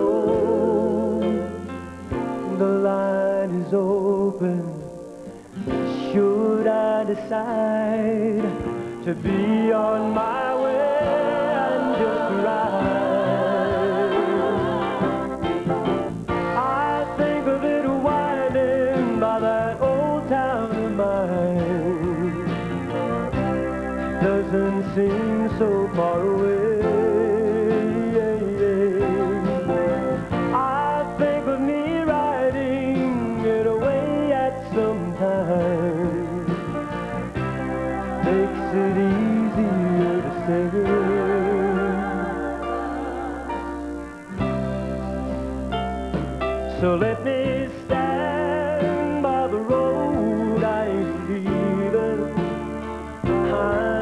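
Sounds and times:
man singing with vibrato: 0.0s - 22.8s, 24.0s - 36.9s, 37.6s - 44.7s, 46.7s - 54.0s
country band playing: 0.0s - 54.0s
guitar lead with bending notes: 36.1s - 48.8s.

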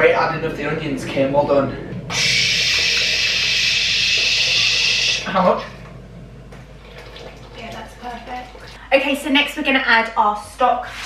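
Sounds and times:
pot of water boiling: 2.0s - 9.4s.

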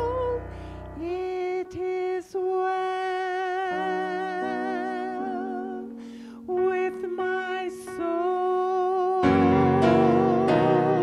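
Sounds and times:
piano accompaniment: 0.0s - 11.0s
woman singing a hymn: 0.0s - 11.0s.

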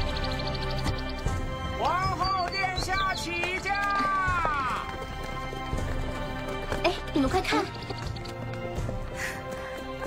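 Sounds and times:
background music: 0.0s - 10.0s
hooves clip-clopping: 0.1s - 10.0s.

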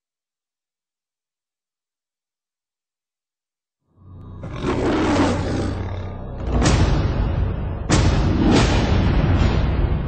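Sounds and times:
rushing roar: 4.4s - 6.7s.

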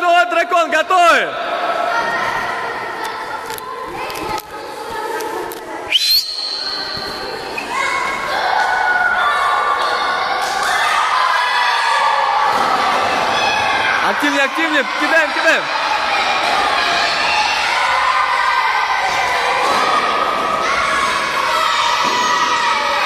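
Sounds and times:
children shouting in a hall: 5.8s - 23.0s.

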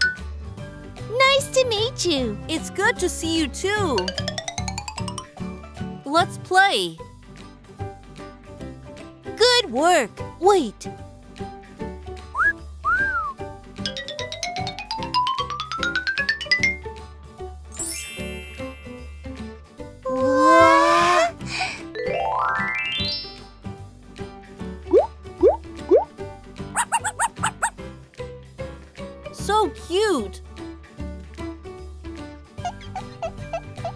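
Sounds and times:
light children's music: 0.0s - 33.9s
short squeaky notes: 20.1s - 21.2s
cartoon whistle glides: 20.1s - 21.3s.

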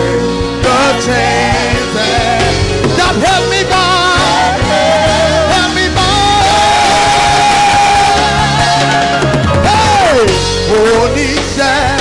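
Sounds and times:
live worship band music: 0.0s - 12.0s.

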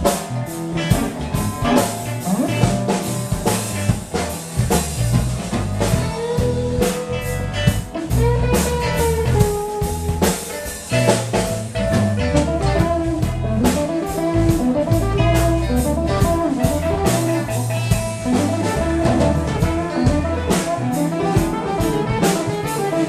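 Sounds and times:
drum kit steady beat: 0.0s - 23.0s
electric bass: 0.0s - 23.0s
electric guitar melodic line: 0.0s - 23.0s.

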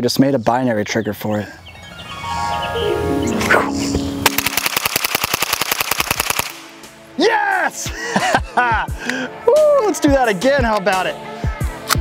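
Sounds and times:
descending musical sound effect: 1.9s - 4.7s
rapid rifle shots: 4.3s - 6.8s.

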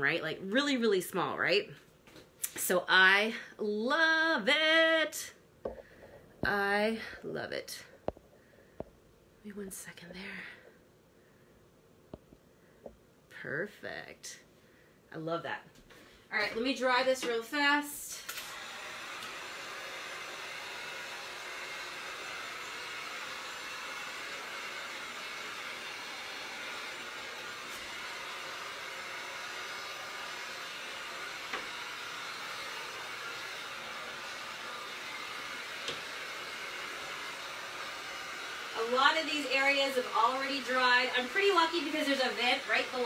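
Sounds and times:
heat gun blowing hot air: 16.5s - 43.0s.

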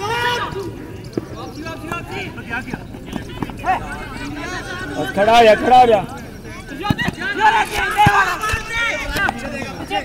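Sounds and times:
men shouting: 2.0s - 6.1s
football being kicked: 6.9s - 9.4s.

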